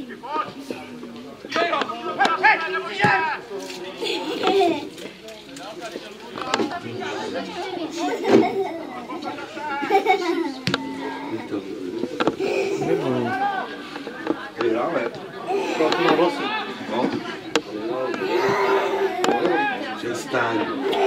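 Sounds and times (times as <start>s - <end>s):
people calling out and shouting: 0.0s - 3.6s, 5.9s - 21.0s.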